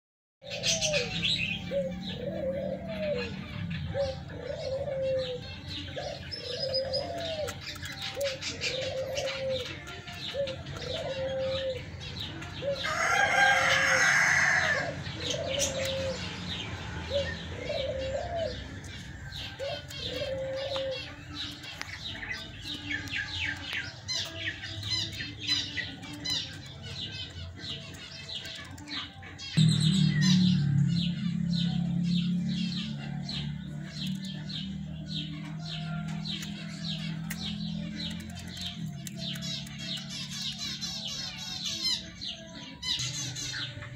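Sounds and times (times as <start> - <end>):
hens calling: 0.4 - 43.9
high chirping: 0.5 - 43.9.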